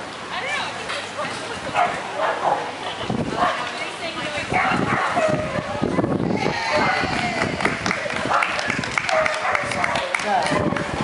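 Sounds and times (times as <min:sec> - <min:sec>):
people's voices: 0:00.2 - 0:11.0
dog yipping and barking: 0:04.6 - 0:05.7.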